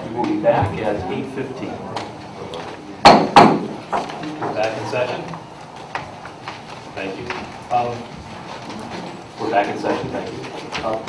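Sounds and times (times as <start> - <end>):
gavel striking wooden table: 3.1 - 4.1.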